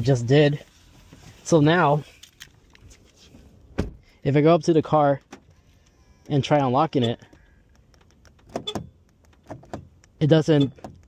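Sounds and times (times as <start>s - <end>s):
car door handle clicks: 7.0s - 11.0s.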